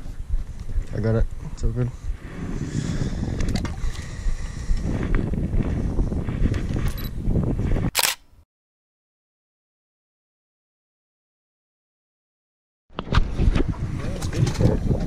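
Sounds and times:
wind buffeting microphone: 0.0s - 8.2s, 12.9s - 15.0s.

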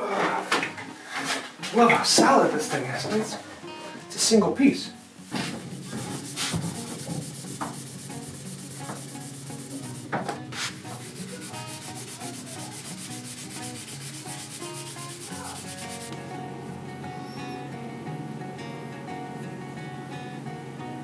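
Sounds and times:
rag rubbing on wood: 5.2s - 16.2s.

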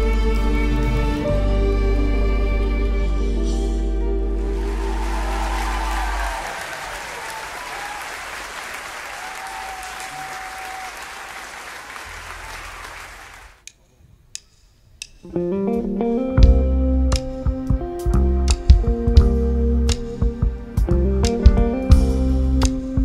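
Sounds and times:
audience applauding: 4.4s - 13.6s.

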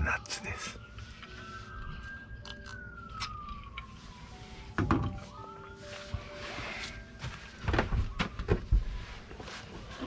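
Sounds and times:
siren wailing: 0.0s - 9.6s.

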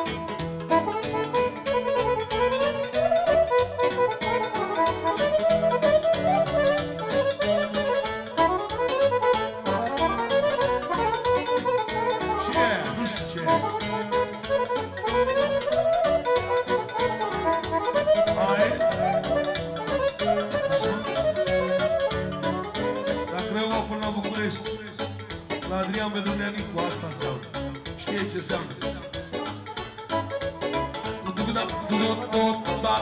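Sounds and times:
steady beat: 0.0s - 32.5s
accordion dance tune: 0.0s - 33.0s.

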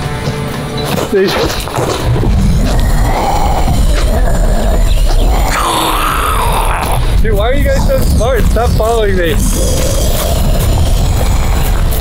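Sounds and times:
background music with low rumble: 0.0s - 12.0s.

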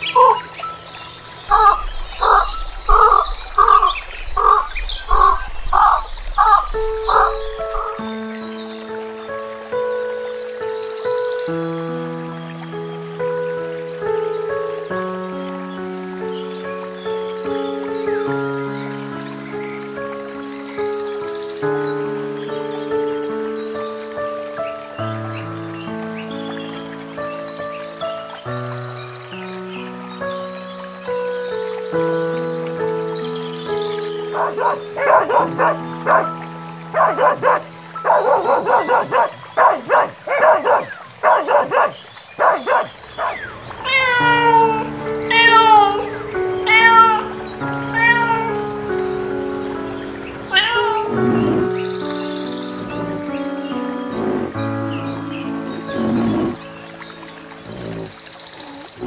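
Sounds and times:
soft background music: 0.0s - 59.0s
dog barking: 34.3s - 43.5s
cat meowing: 43.3s - 49.0s, 50.5s - 51.7s.

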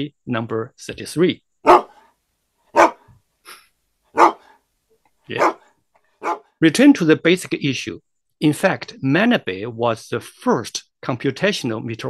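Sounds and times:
dog barking: 1.6s - 2.0s, 2.7s - 3.1s, 4.2s - 4.6s, 5.3s - 6.5s.

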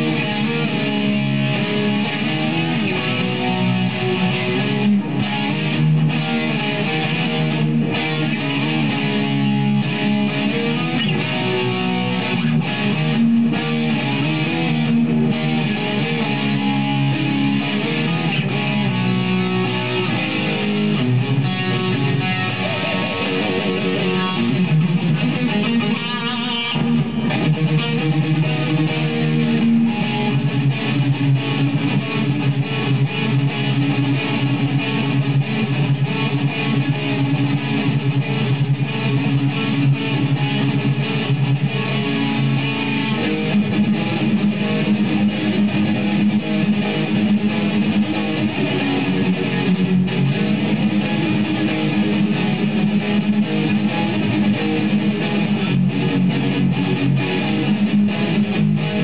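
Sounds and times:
distorted electric guitar riffs: 0.0s - 59.0s.

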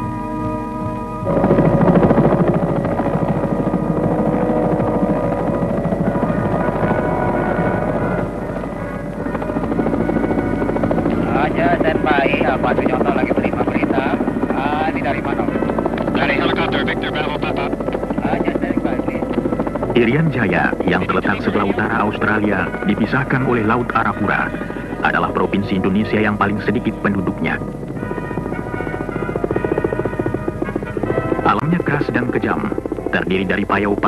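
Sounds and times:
helicopter rotor and engine: 0.0s - 34.0s
voices talking: 11.0s - 27.7s, 31.4s - 34.0s.

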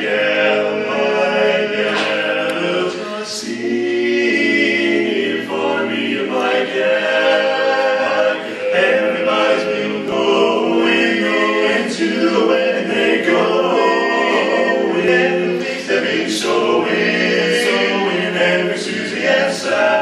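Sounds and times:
male quartet singing a cappella: 0.0s - 20.0s.

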